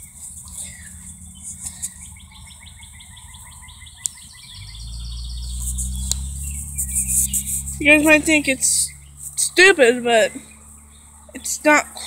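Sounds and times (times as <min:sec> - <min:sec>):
bird chirping: 0:00.0 - 0:12.0
low steady hum: 0:00.0 - 0:12.0.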